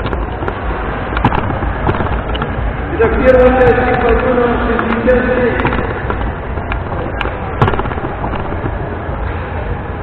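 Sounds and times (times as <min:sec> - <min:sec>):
sharp knocks: 0:00.0 - 0:02.6, 0:03.6 - 0:08.9.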